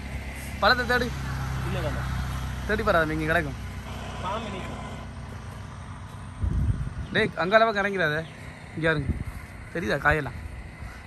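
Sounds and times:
vehicle engine hum: 0.0 - 11.0.

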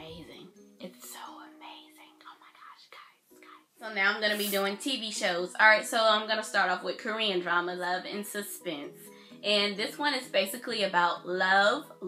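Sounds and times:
woman speaking softly: 3.8 - 4.8.

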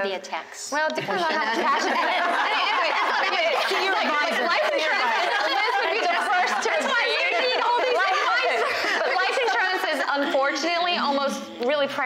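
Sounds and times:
several voices talking: 0.7 - 12.0.

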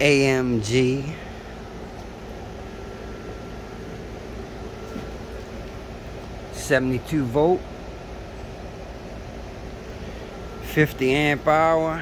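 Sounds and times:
background hum and hiss: 0.0 - 12.0
faint steady tone: 0.0 - 12.0.

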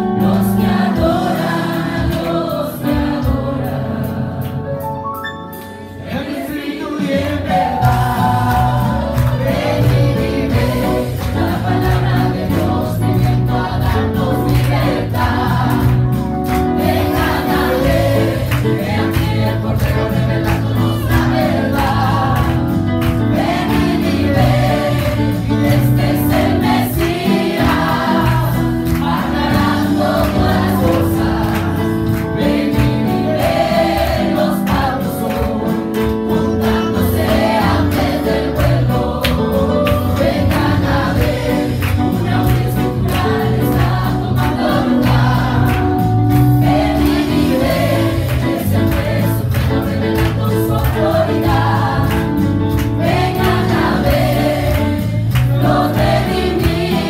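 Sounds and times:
group singing gospel through pa: 0.0 - 4.9, 5.6 - 57.0
instrumental accompaniment with beat: 0.0 - 57.0.

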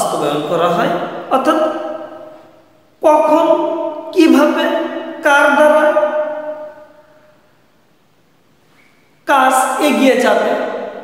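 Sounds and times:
man speaking: 0.0 - 6.6, 9.2 - 11.0.

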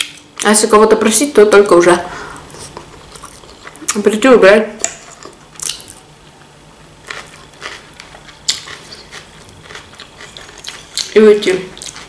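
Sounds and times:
person chewing food: 2.4 - 4.0, 4.9 - 6.1, 7.0 - 12.0.

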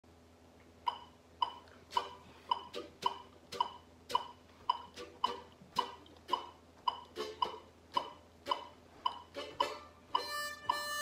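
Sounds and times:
metronome clicking: 0.9 - 11.0.

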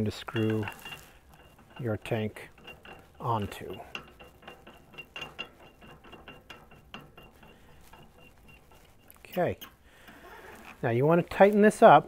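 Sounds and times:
metallic clicks and scrapes: 0.0 - 12.0.

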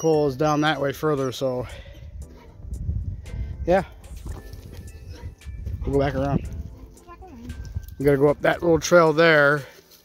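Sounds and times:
footsteps crunching dry leaves: 6.5 - 10.0.

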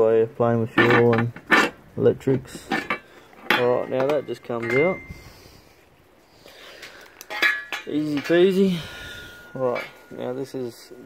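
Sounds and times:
metal bracket clinking: 2.7 - 5.2, 7.2 - 11.0.

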